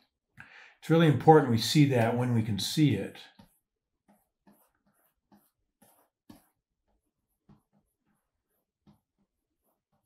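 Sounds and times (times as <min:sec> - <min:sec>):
stylus scratching drawing tablet: 0:02.8 - 0:10.0.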